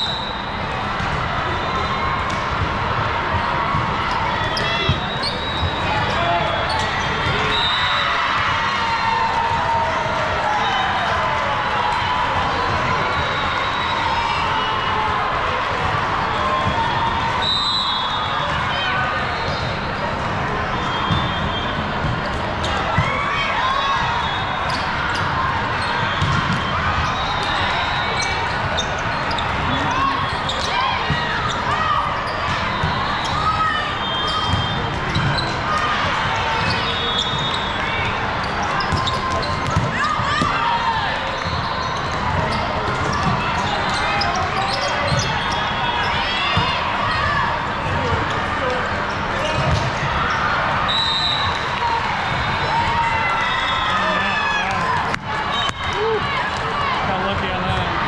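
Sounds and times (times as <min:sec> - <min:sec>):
din of voices in a gym: 0:00.0 - 0:58.0
shoes squeaking on court: 0:04.5 - 0:07.8, 0:24.3 - 0:35.6, 0:38.4 - 0:40.6, 0:41.3 - 0:46.7.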